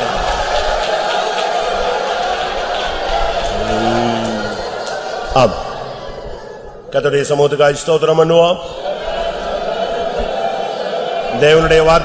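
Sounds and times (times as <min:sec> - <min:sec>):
congregation praying aloud: 0:00.0 - 0:12.0
man's voice rising above: 0:03.6 - 0:04.6.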